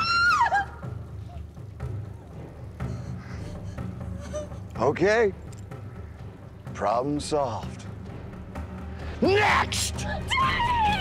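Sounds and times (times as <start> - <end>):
woman screaming: 0.0 - 0.9, 10.0 - 11.0
low rumbling background music: 0.0 - 11.0.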